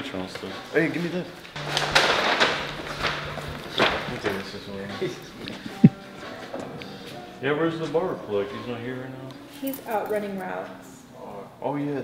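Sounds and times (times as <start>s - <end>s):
rustling: 1.6s - 6.0s.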